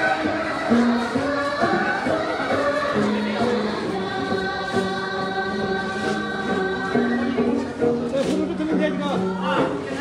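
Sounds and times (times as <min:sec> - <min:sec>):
group singing in unison: 0:00.0 - 0:08.0.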